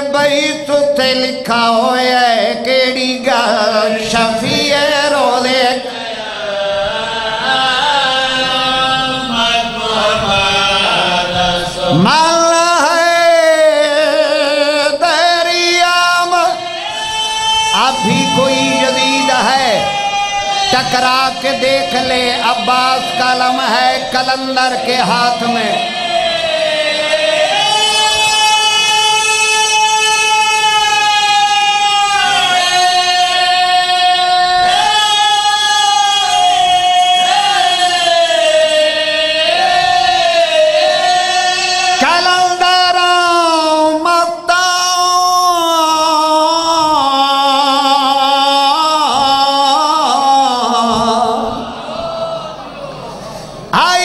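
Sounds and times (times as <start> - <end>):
man chanting through microphone: 0.0 - 54.0
man singing long high note: 0.0 - 54.0.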